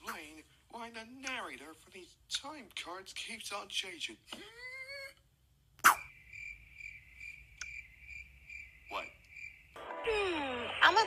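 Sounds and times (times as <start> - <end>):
cricket chirping: 5.9 - 9.8.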